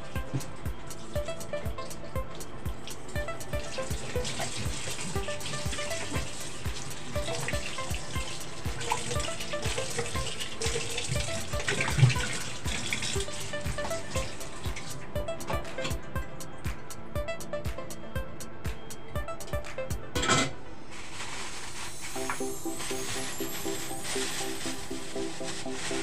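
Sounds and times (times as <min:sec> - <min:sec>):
background music with beat: 0:00.0 - 0:26.0
tap water running into sink: 0:02.9 - 0:15.0.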